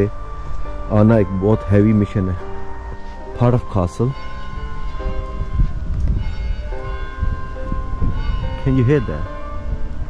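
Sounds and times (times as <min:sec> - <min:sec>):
church bells ringing: 0:00.0 - 0:10.0
low rumble: 0:00.0 - 0:10.0.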